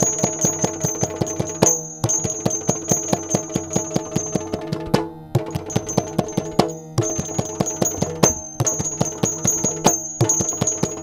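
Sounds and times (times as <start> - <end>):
drum beaten rapidly with sticks: 0.0 - 11.0
other percussion: 0.0 - 11.0.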